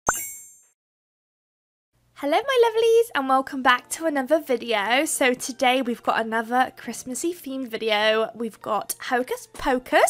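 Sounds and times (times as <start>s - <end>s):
pop with bright chime: 0.1s - 0.7s.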